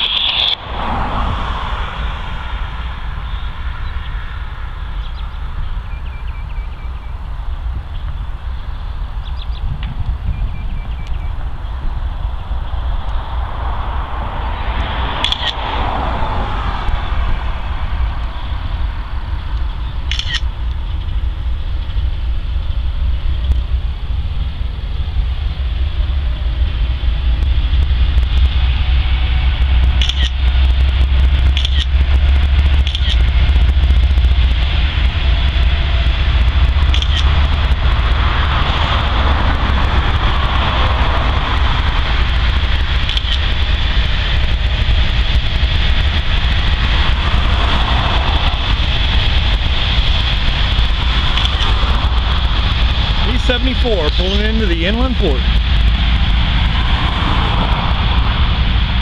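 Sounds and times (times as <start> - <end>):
diesel locomotive engine rumble: 0.0 - 59.0
steel wheels rolling on rail: 0.0 - 59.0
rail clicks: 15.2 - 16.1, 26.7 - 57.5.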